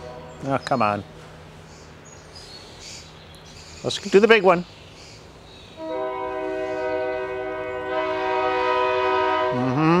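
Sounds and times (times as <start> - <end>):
train air horn chord: 5.8 - 10.0.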